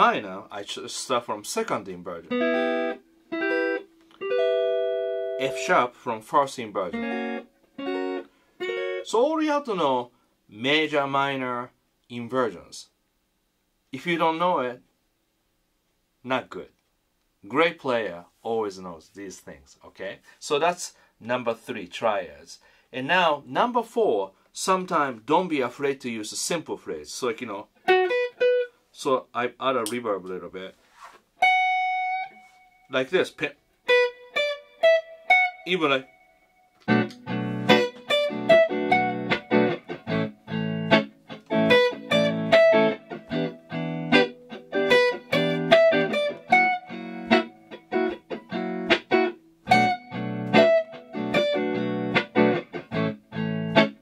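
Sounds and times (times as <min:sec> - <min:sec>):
clean electric guitar chords: 0:02.3 - 0:05.6, 0:06.9 - 0:09.0, 0:33.9 - 0:54.0
electric guitar picked note: 0:02.3 - 0:05.6.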